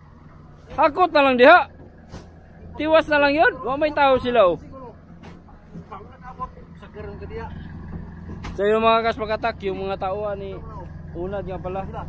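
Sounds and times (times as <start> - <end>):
low engine hum: 0.0 - 12.0.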